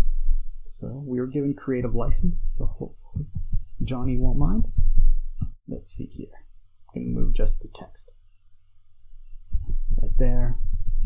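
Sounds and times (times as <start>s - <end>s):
low steady hum: 0.0s - 11.0s
computer mouse clicks: 9.5s - 9.9s.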